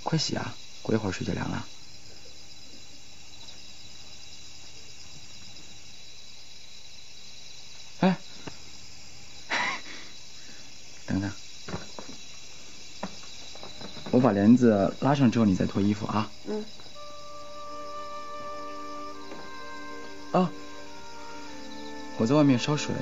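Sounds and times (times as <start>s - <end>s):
crickets chirping: 0.0s - 23.0s.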